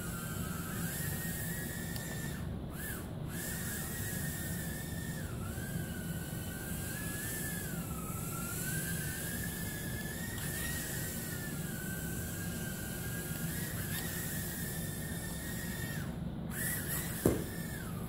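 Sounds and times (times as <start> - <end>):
small drone motors whining: 0.0 - 18.0.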